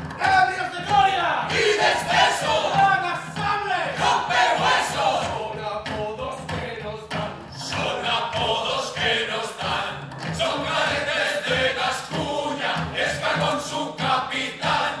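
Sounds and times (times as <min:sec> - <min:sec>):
lively stage music: 0:00.0 - 0:15.0
men singing in chorus: 0:01.5 - 0:03.0, 0:03.8 - 0:15.0.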